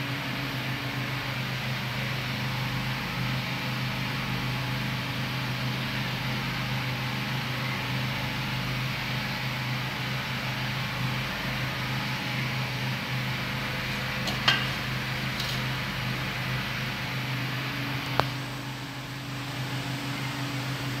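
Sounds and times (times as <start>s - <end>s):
low mechanical hum: 0.0s - 21.0s
metal pot lid clinks: 14.0s - 15.8s.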